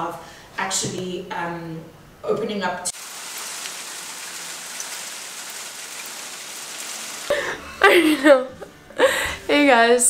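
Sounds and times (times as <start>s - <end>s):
rain on wooden deck: 2.9s - 7.3s.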